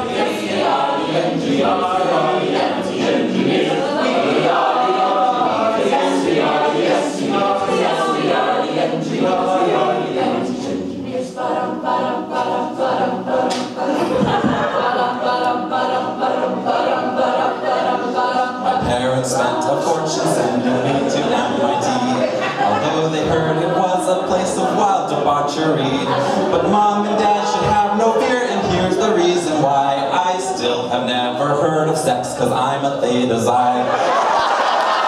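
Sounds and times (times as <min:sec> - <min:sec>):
a cappella group singing: 0:00.0 - 0:35.0.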